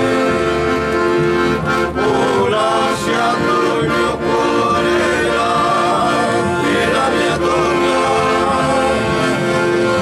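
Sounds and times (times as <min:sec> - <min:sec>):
men singing in chorus: 0:01.8 - 0:10.0.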